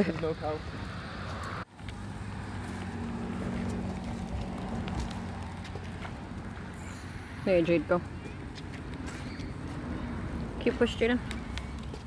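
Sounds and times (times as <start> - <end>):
stroller wheels rolling on concrete: 0.0 - 12.0.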